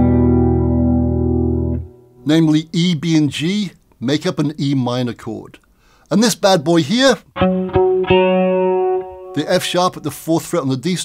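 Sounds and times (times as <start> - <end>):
clean electric guitar chord: 0.0 - 2.0, 7.4 - 9.8.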